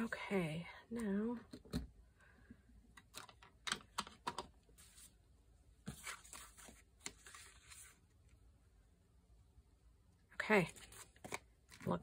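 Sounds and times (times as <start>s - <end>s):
paper and card rustling: 5.8s - 8.1s, 10.6s - 12.0s.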